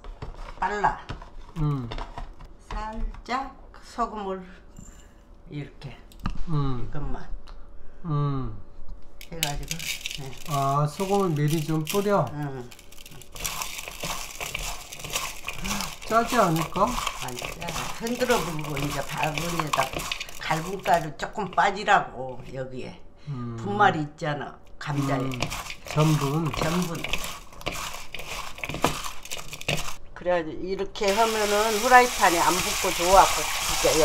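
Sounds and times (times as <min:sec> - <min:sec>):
potato sticks rustling with salt: 0:09.3 - 0:21.6, 0:24.8 - 0:30.0, 0:31.1 - 0:34.0.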